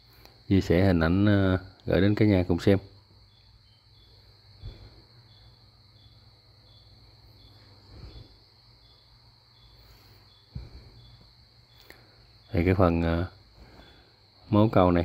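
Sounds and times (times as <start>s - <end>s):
cricket chirping: 0.0s - 15.0s
soft low thumps: 10.5s - 11.0s.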